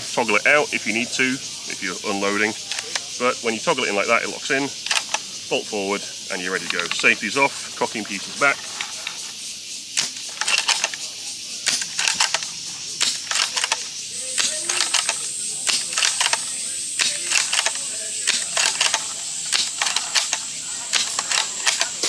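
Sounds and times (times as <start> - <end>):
rifle bolt clicks and clacks: 4.9 - 5.2, 10.0 - 11.0, 11.7 - 13.8, 14.4 - 22.0
airsoft rifle firing: 14.4 - 22.0.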